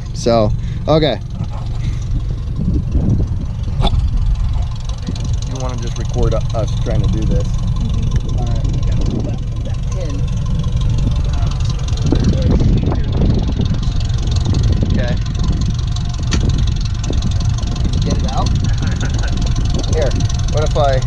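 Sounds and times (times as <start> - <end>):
vehicle engine idling: 0.0 - 21.0
low voices: 3.8 - 10.4, 11.0 - 14.1, 17.9 - 21.0.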